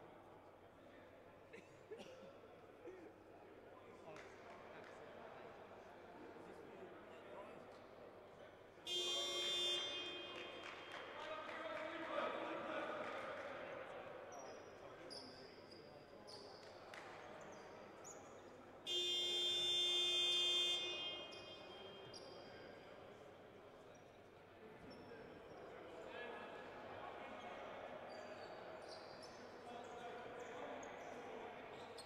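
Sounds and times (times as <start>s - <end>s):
scoreboard buzzer: 8.9s - 10.5s, 18.9s - 21.5s.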